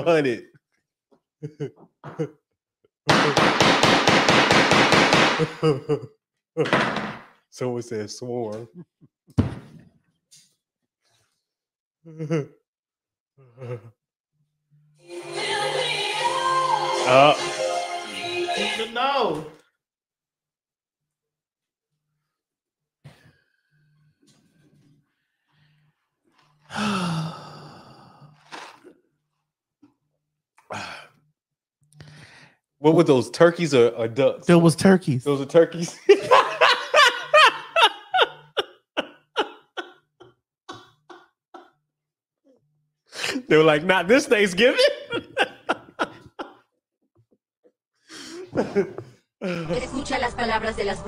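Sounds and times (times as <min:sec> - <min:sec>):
wooden gavel banging rapidly: 0:03.1 - 0:05.4
woman sighing: 0:26.7 - 0:28.6
short breath: 0:32.0 - 0:32.6.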